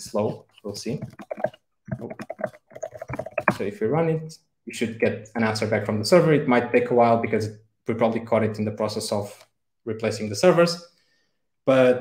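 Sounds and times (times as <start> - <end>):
typing on computer keyboard: 1.0 - 3.6.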